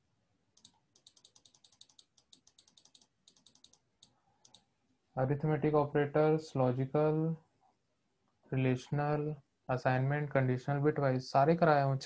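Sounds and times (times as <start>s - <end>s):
computer keyboard typing: 0.6s - 4.6s.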